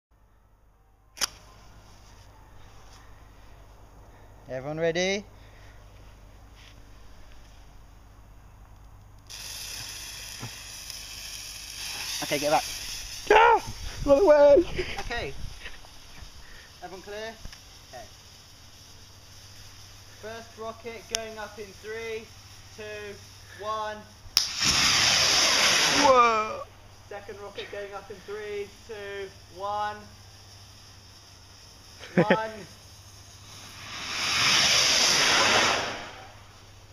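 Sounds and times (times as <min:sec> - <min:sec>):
rocket fuse hissing: 0:01.2 - 0:02.0, 0:08.8 - 0:36.9
small pop: 0:24.3 - 0:24.9
rocket launch pop: 0:24.4 - 0:26.2, 0:33.6 - 0:36.5.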